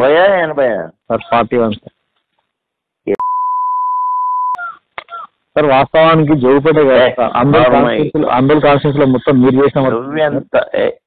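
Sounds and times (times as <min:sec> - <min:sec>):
voice on phone call: 0:00.0 - 0:01.9
censor beep tone: 0:03.2 - 0:04.7.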